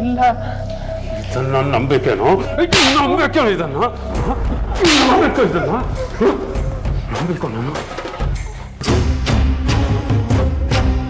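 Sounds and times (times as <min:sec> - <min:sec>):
gliding melody: 0:00.0 - 0:08.2
low steady drone: 0:00.0 - 0:08.5.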